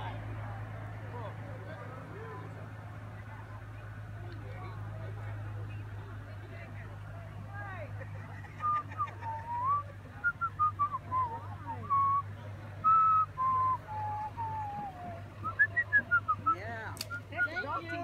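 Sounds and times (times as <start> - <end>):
person whistling a tune: 12.8 - 16.4.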